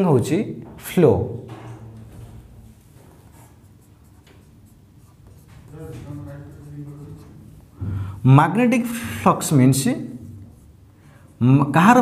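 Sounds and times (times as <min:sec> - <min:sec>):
marker scratching on whiteboard: 0:02.7 - 0:07.8, 0:08.9 - 0:12.0.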